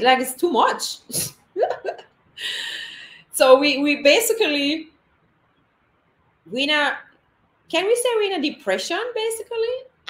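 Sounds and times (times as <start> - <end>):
woman laughing: 1.1 - 2.7.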